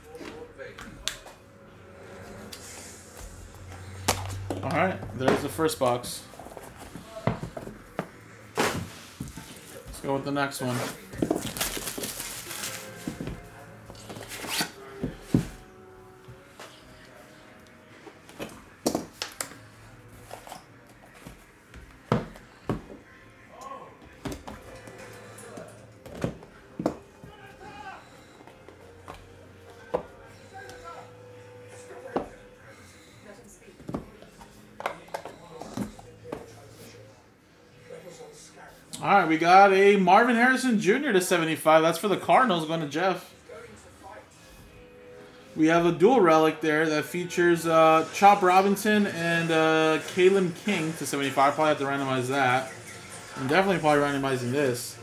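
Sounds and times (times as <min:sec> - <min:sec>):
cardboard rustling: 0:10.6 - 0:13.4.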